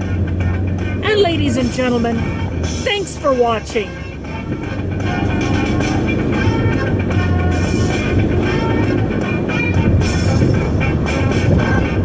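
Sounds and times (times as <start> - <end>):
car driving hum: 0.0 - 12.0
music playing: 0.0 - 12.0.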